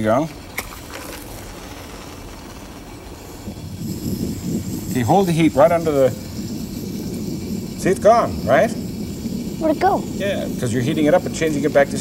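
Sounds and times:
gas torch hissing: 0.0 - 12.0.

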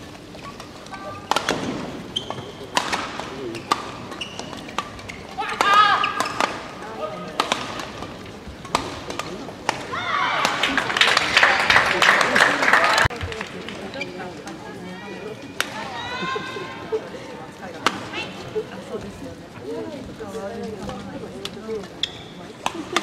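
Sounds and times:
spectators' voices: 0.0 - 23.0
racket hitting shuttlecock: 0.4 - 10.8
crowd cheering and clapping: 10.2 - 13.4.

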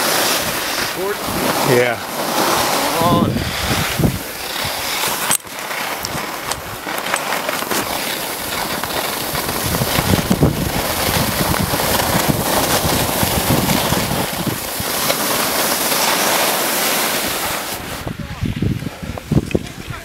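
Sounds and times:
wind rushing over microphone: 0.0 - 7.0, 7.6 - 15.6, 17.0 - 20.0
skis sliding on snow: 0.0 - 20.0.

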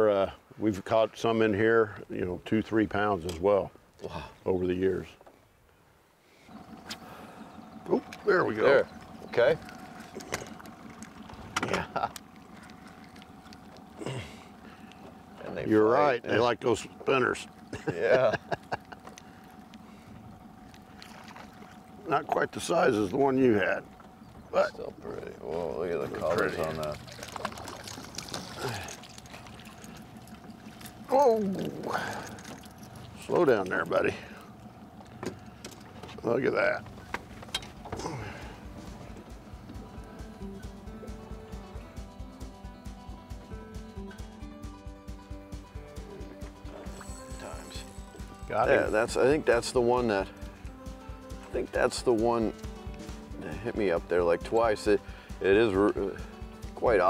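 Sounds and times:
boat motor humming: 0.0 - 57.0
fish flapping: 8.9 - 15.4, 26.2 - 33.2
faint even whine: 46.6 - 50.8.

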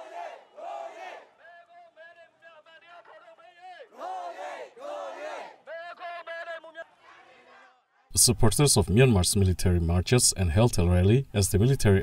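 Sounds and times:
crowd drawn-out shouts: 0.0 - 7.8
crowd chanting in unison: 0.0 - 8.1.

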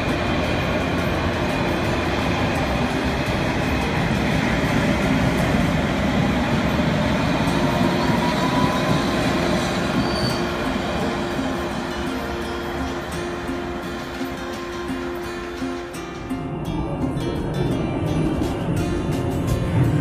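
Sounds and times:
vehicle running in motion: 0.0 - 15.0, 17.2 - 20.0.

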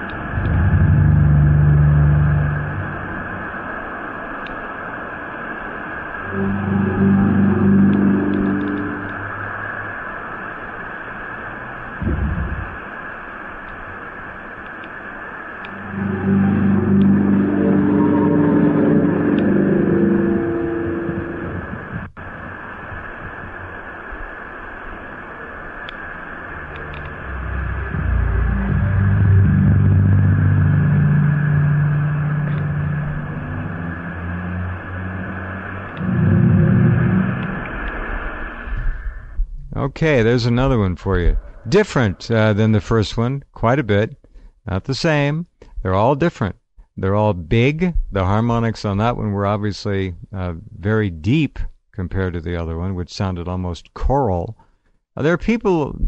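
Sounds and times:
deep droning sky sound: 0.0 - 42.5
steady hiss: 0.0 - 45.8
short low thump: 12.0 - 12.8.

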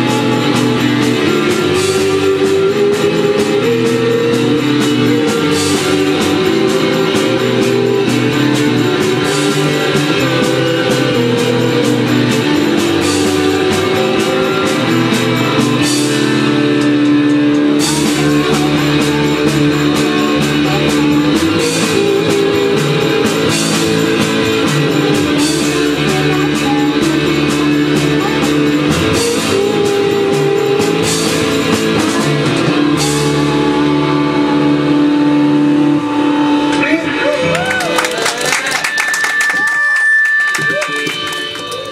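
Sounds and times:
electric guitar chord ringing: 0.0 - 41.9
live rock band playing: 0.0 - 41.9.

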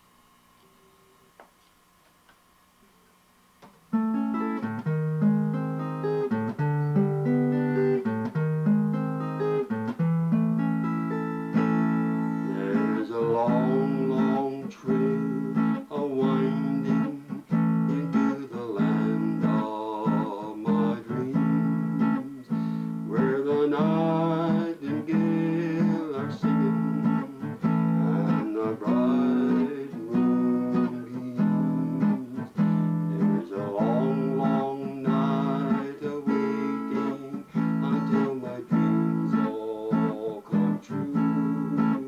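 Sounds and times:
acoustic guitar playing: 3.6 - 42.0
elderly man singing: 11.5 - 42.0.

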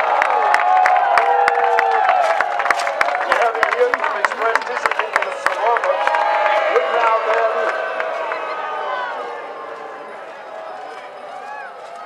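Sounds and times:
hand claps: 0.0 - 8.2
crowd cheering and shouting: 0.0 - 12.0.

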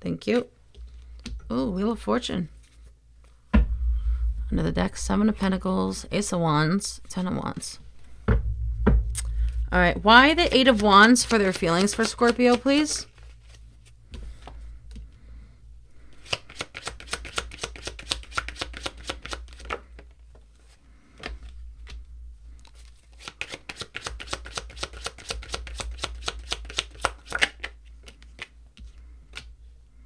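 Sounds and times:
cards being shuffled: 10.4 - 15.0, 16.1 - 20.1, 22.6 - 29.5.

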